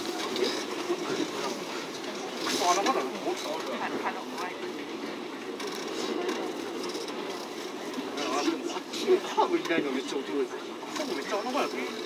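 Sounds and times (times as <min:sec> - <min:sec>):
electric train running: 0:00.0 - 0:12.0
faint passengers talking: 0:00.0 - 0:12.0.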